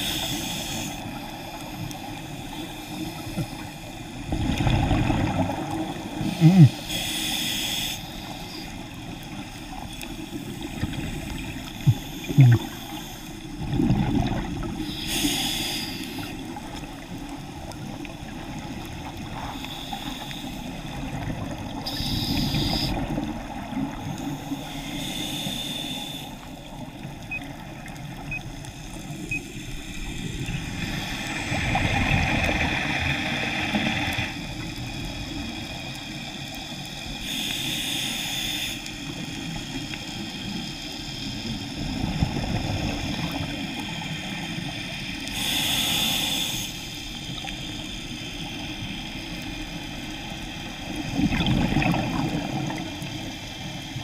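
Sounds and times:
diver breathing through regulator: 0:00.0 - 0:04.0, 0:06.1 - 0:08.7, 0:11.3 - 0:13.6, 0:14.6 - 0:16.4, 0:19.4 - 0:20.9, 0:21.8 - 0:23.2, 0:24.1 - 0:26.8, 0:37.1 - 0:39.1, 0:45.2 - 0:48.8
low rumble of water: 0:00.0 - 0:07.0, 0:08.1 - 0:25.2, 0:26.0 - 0:37.5, 0:38.8 - 0:46.0, 0:46.7 - 0:54.0
bubbling exhalations: 0:06.2 - 0:06.9, 0:11.9 - 0:12.8, 0:51.1 - 0:52.9.

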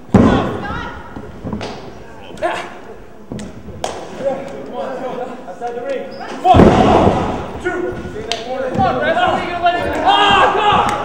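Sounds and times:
body thudding on wrestling ring: 0:06.5 - 0:07.5
spectators shouting: 0:08.9 - 0:11.0.

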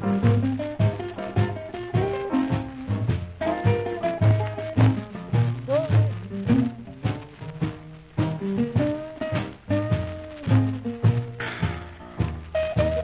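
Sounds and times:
rhythm and blues record: 0:00.0 - 0:13.0
thumping bass line: 0:00.0 - 0:13.0.

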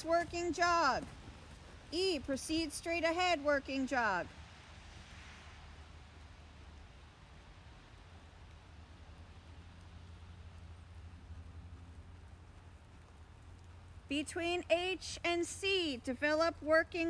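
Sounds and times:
horse hoofbeats on dirt: 0:00.0 - 0:04.2
steady low rumble: 0:00.0 - 0:15.4.

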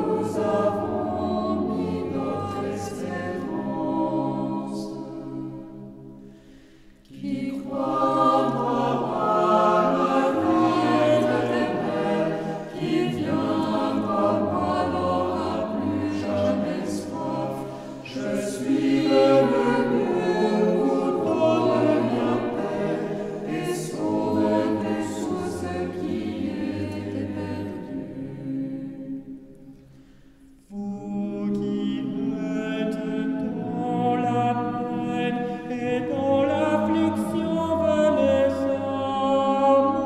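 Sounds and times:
mixed choir singing a cappella: 0:00.0 - 0:40.0.

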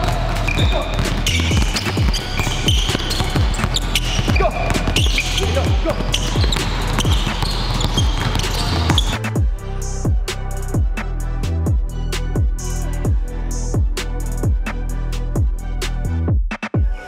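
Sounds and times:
basketballs dribbling on wooden floor: 0:00.0 - 0:09.2
background music with bass-heavy beat: 0:00.0 - 0:17.0.

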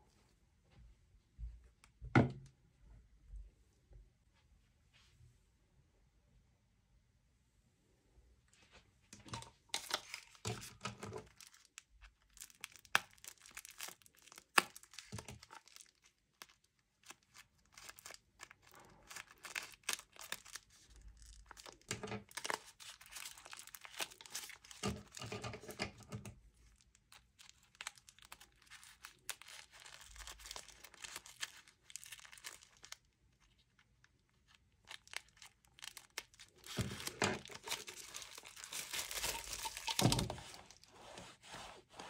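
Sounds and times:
crinkling and tearing: 0:09.2 - 0:41.3.

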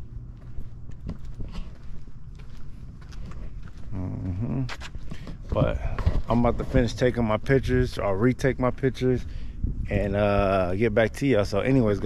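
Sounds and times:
footsteps on concrete: 0:00.0 - 0:07.6
steady low rumble: 0:00.0 - 0:12.0.

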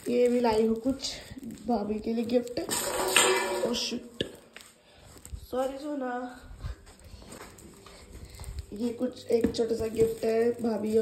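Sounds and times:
foil paper rustling: 0:00.0 - 0:03.0, 0:03.6 - 0:06.2, 0:06.9 - 0:11.0.

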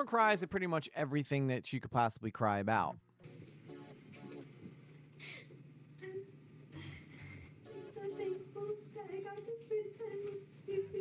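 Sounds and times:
quiet music: 0:03.2 - 0:11.0
woman crying softly: 0:05.2 - 0:07.6.

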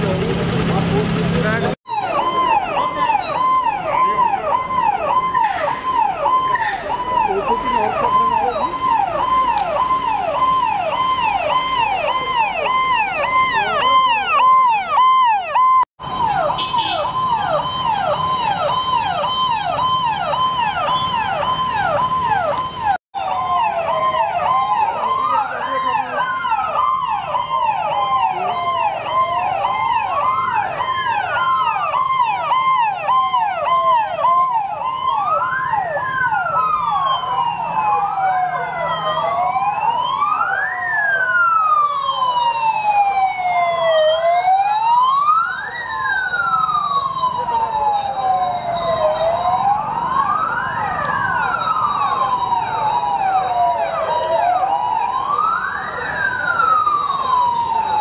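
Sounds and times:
police sirens yelping and wailing: 0:00.0 - 0:58.0.

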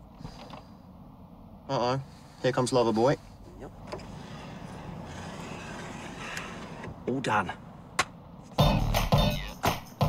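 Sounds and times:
car interior rumble: 0:00.0 - 0:08.7.

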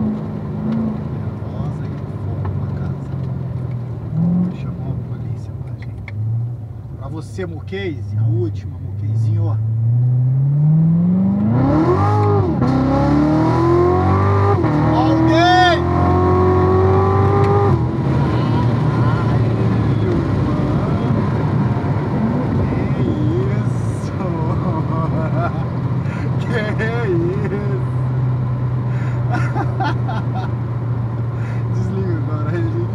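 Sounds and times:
car engine at full throttle: 0:00.0 - 0:32.9.

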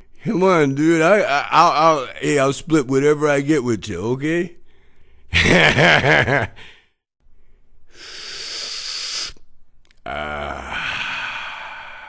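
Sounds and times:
man laughing: 0:05.3 - 0:06.7
breathy inhale hiss: 0:06.6 - 0:09.4, 0:10.6 - 0:12.0.

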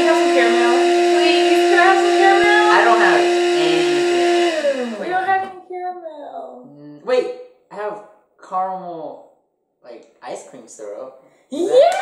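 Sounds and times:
coffee grinder running: 0:00.0 - 0:05.5.

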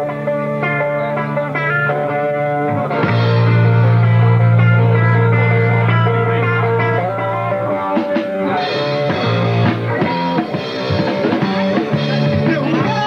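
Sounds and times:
bass guitar: 0:00.0 - 0:13.0
drum kit: 0:00.0 - 0:13.0
electric guitar: 0:00.0 - 0:13.0.

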